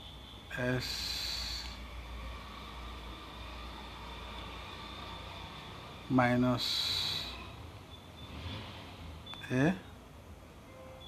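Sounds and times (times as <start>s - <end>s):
faint hiss: 0.5s - 9.9s.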